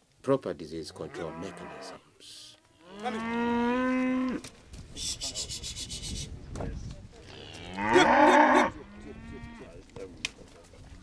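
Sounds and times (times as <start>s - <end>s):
cattle mooing: 2.8s - 4.4s, 7.3s - 9.8s.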